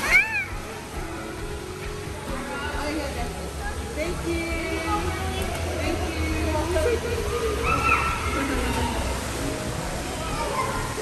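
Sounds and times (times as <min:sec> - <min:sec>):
indoor pool background: 0:00.0 - 0:11.0.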